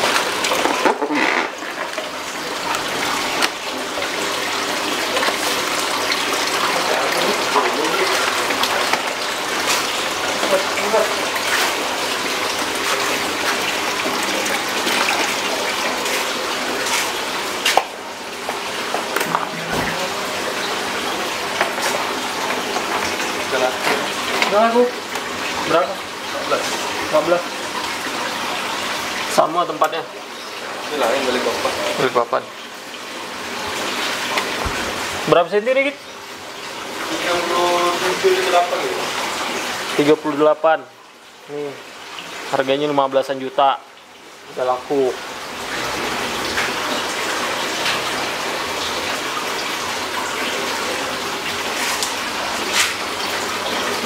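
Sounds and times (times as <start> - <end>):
aquarium filter water splashing: 0.0 - 54.0.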